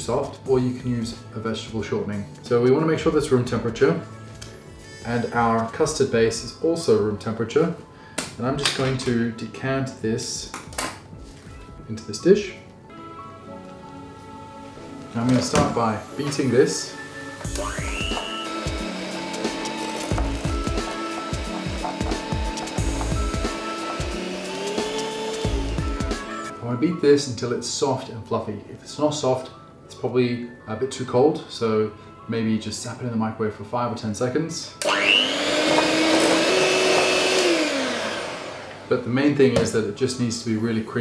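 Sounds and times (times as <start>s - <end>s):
electric mixer whining: 17.4s - 26.5s, 34.8s - 38.9s.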